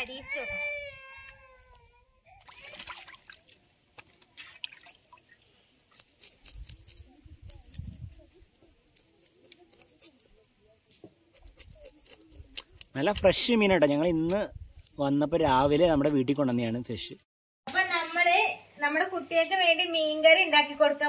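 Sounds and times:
water splashing: 0:02.4 - 0:06.0
knife scraping fish: 0:05.9 - 0:08.0, 0:08.9 - 0:10.5, 0:11.3 - 0:13.2.

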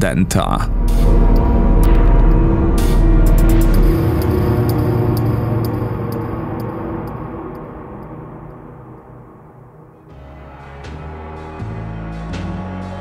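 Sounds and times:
low noisy transition sound: 0:00.6 - 0:10.1.

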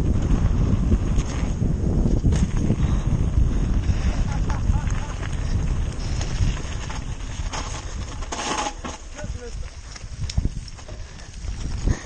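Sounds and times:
bike rattling and knocking: 0:00.0 - 0:12.0.

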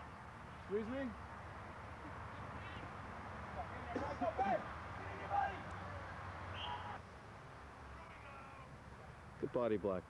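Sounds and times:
distant voice calling out: 0:07.9 - 0:08.8.

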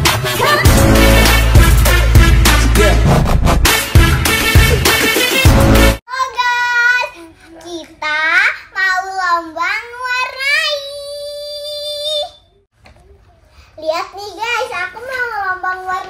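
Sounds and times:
upbeat intro music: 0:00.0 - 0:06.0.

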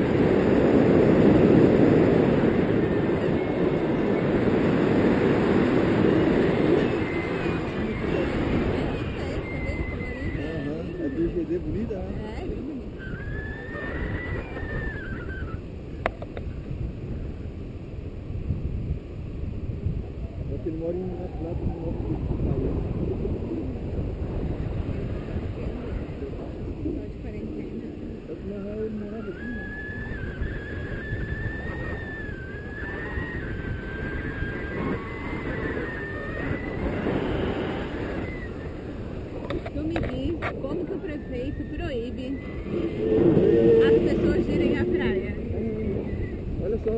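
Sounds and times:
wind buffeting microphone: 0:00.0 - 0:46.9
thin high wavering tone: 0:02.3 - 0:15.7, 0:28.5 - 0:39.7, 0:40.6 - 0:46.8
faint high tone: 0:06.7 - 0:11.5.

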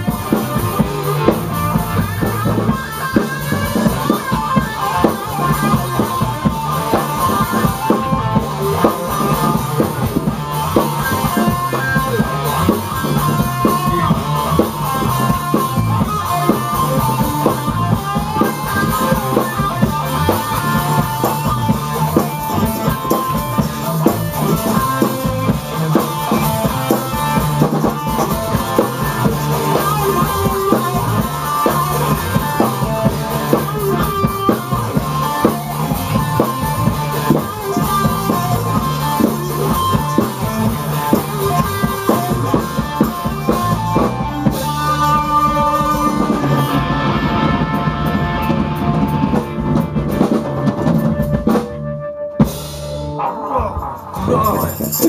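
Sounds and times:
drum kit playing: 0:00.0 - 0:55.0
electric guitar playing loudly: 0:00.0 - 0:55.0.

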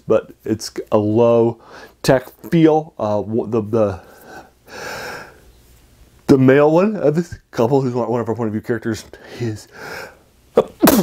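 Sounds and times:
man speaking: 0:00.0 - 0:04.1, 0:06.3 - 0:09.7, 0:10.6 - 0:11.0
man inhaling through mouth: 0:04.1 - 0:05.4.

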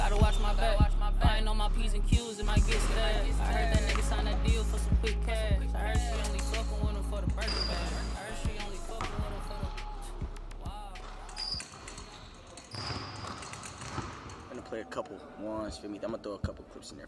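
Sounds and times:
bass-heavy music: 0:00.0 - 0:11.3
sneaker squeaks: 0:07.2 - 0:09.6, 0:11.0 - 0:16.9
basketball bouncing on hardwood floor: 0:08.5 - 0:09.6.

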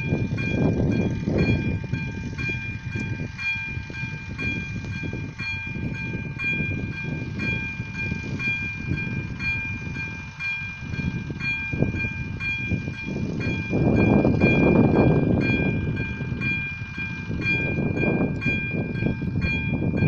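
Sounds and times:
electronic level crossing bell ringing: 0:00.0 - 0:20.0
low rumbling noise: 0:00.0 - 0:20.0.

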